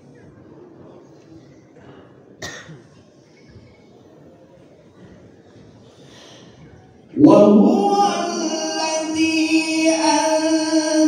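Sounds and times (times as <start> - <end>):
seated crowd room noise: 0.0 - 11.0
person coughing: 2.4 - 2.9.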